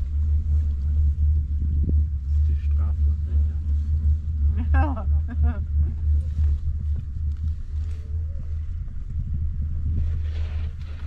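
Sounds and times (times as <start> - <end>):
chairlift low rumble: 0.0 - 11.0.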